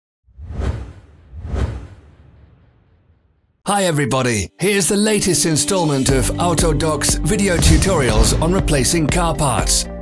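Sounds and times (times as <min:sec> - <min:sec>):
whoosh with bass rumble: 0:00.3 - 0:03.4.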